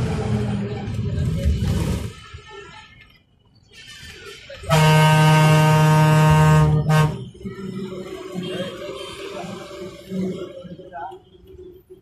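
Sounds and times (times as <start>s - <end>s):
bus engine rumble: 0.0s - 12.0s
bus horn blasts: 4.6s - 7.4s.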